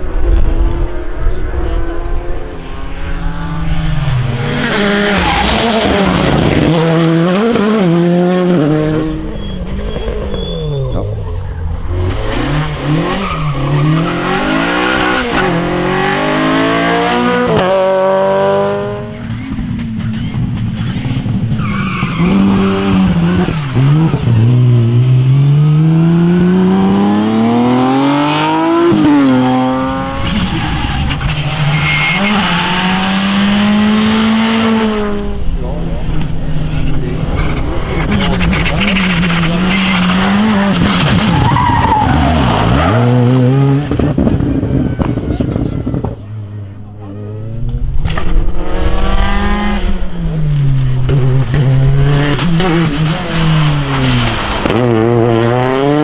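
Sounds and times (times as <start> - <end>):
rally cars passing at full throttle: 0.0 - 56.0
tyres skidding on loose surface: 36.8 - 44.4, 51.4 - 55.6.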